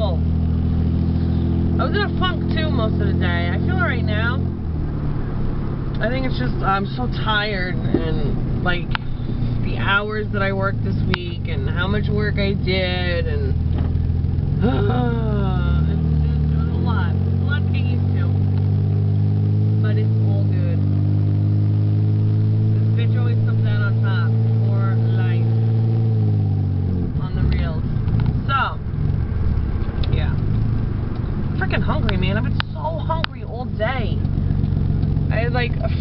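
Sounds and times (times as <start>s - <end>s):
car engine droning: 0.0s - 36.0s
road noise: 0.0s - 36.0s.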